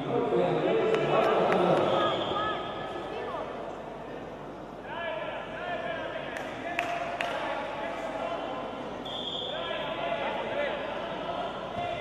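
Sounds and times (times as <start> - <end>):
voices in a sports hall: 0.0 - 12.0
referee's whistle blast: 9.0 - 9.6.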